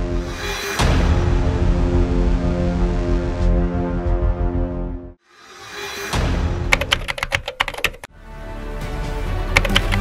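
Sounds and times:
music: 0.0 - 10.0
keyboard typing clicks: 6.7 - 8.1, 9.6 - 10.0.

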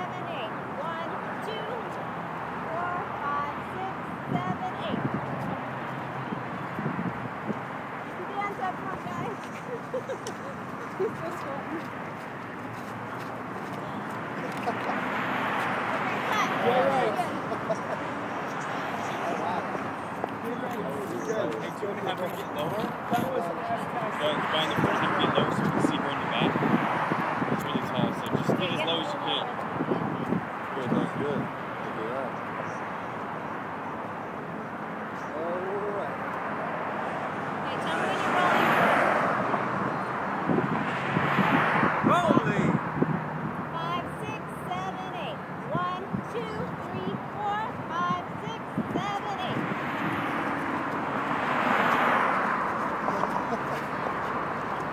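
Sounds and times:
people talking: 0.0 - 2.0, 2.7 - 5.1, 8.2 - 11.8, 16.0 - 26.6, 27.6 - 31.4, 35.4 - 36.2, 37.6 - 39.0, 42.0 - 42.8, 43.8 - 49.7
street background: 0.0 - 54.9.

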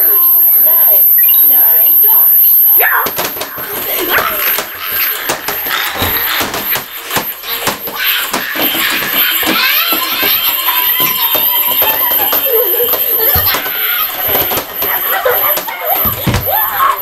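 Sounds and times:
plastic toys clattering: 3.2 - 16.3
child laughing and squealing: 4.0 - 17.0.

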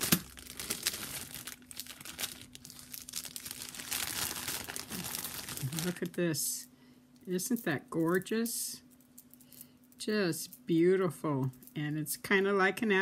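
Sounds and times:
plastic bag crinkling: 0.0 - 6.3.

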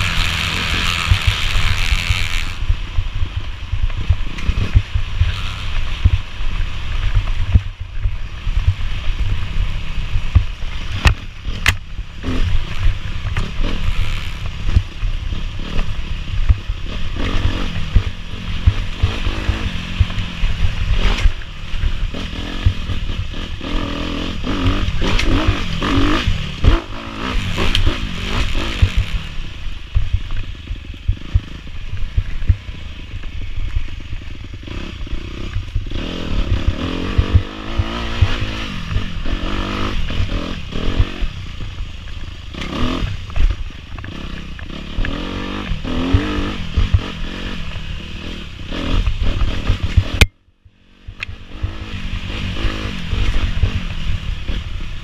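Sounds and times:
bike rattling and knocking: 0.0 - 9.4, 10.2 - 41.8
dirt bike engine revving: 0.0 - 55.0.

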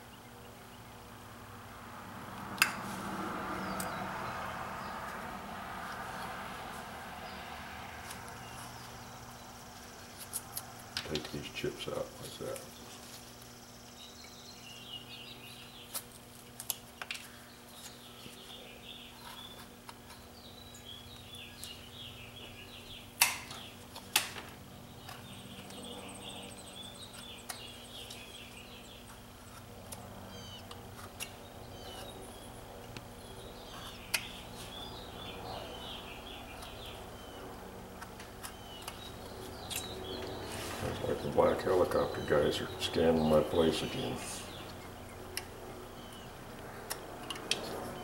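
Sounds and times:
steady low hum: 0.0 - 48.0
birds chirping: 2.2 - 48.0.

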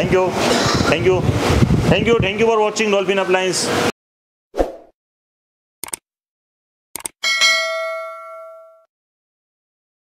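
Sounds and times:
notification bell ding: 7.2 - 8.9.

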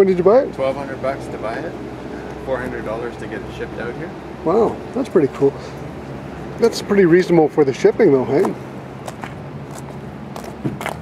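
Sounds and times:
light footsteps on pavement: 4.7 - 11.0.

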